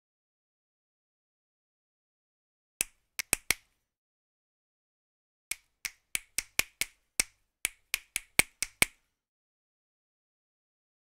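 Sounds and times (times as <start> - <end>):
finger snaps: 2.8 - 3.7, 5.5 - 9.1.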